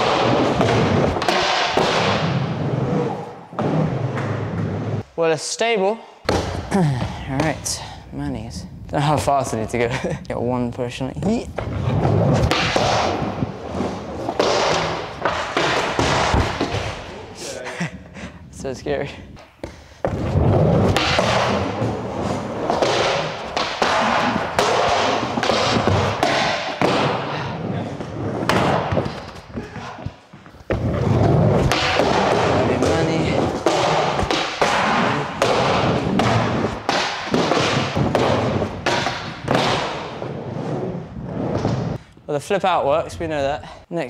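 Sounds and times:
skateboard rolling on wood: 11.5 - 17.1, 20.0 - 42.0
skateboard clacks and thuds: 11.6 - 17.1, 28.4 - 40.4.

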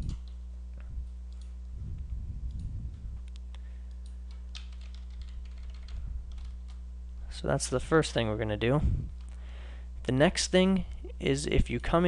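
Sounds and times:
low electrical hum: 0.0 - 12.0
keyboard keystrokes: 4.3 - 6.8.

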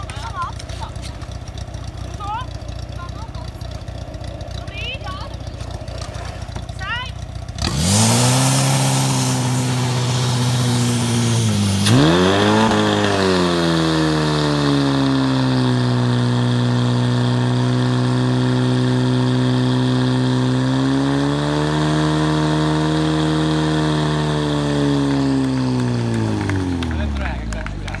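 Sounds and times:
pump engine running at high revs: 0.0 - 28.0
water spraying from nozzles: 7.5 - 16.8.

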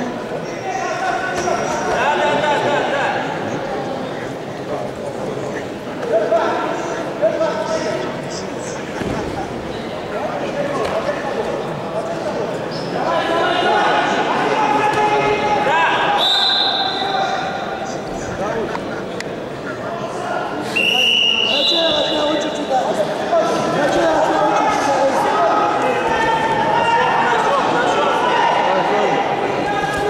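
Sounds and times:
short high whistle tones: 20.7 - 22.2.

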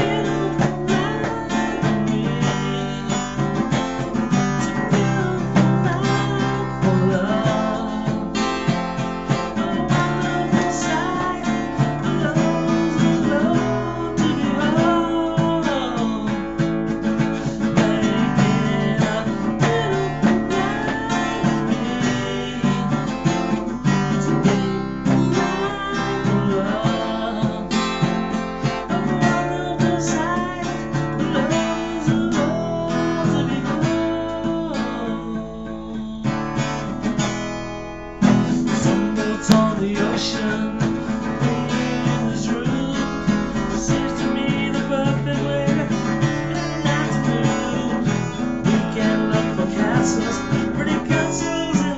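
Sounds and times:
man singing: 0.0 - 37.3, 38.2 - 51.9
acoustic guitar strumming: 0.0 - 51.9.

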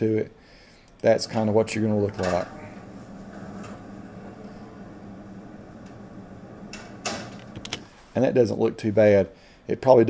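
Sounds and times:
low room hum: 0.0 - 10.0
door latching shut: 2.2 - 2.7, 5.8 - 7.9.

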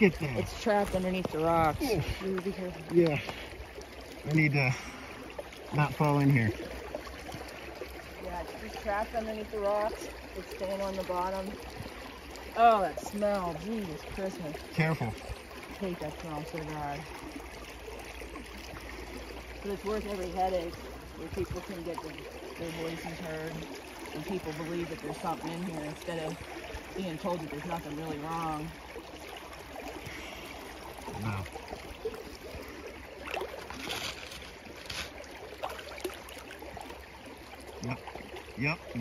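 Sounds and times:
creek water running over rocks: 0.0 - 39.0
stick splashing in water: 33.2 - 36.5.

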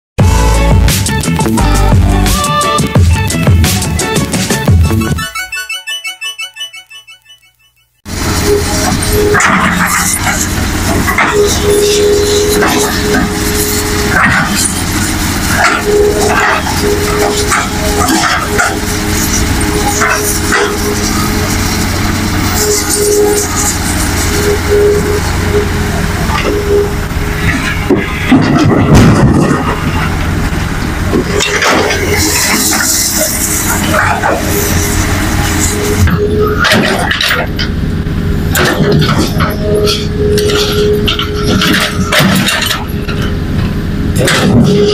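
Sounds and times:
dump truck engine running: 0.2 - 6.0, 8.0 - 44.9
excavator diesel engine: 0.2 - 7.2, 8.0 - 44.9
hydraulic whine: 4.8 - 44.9
loud burst of noise: 8.1 - 44.9.

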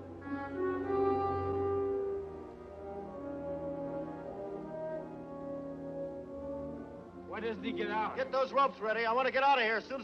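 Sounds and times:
horns holding sustained chords: 0.0 - 8.7
orchestral music with brass: 0.0 - 10.0.

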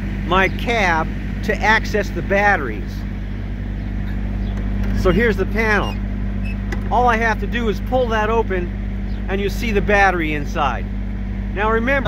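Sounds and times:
engine idling hum: 0.0 - 12.0.

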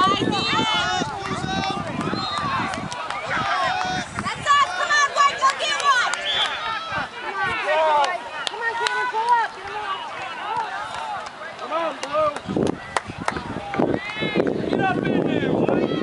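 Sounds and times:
spectators chattering: 0.0 - 16.0.

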